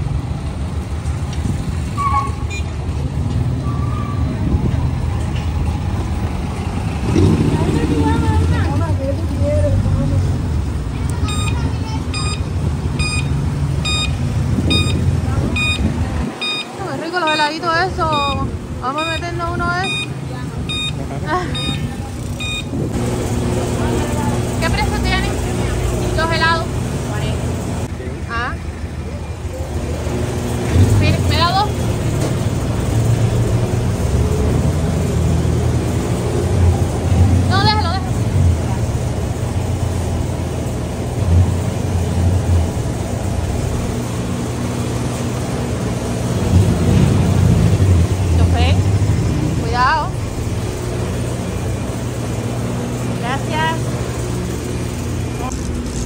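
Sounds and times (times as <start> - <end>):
ice cream machine motor humming: 19.2 - 46.6.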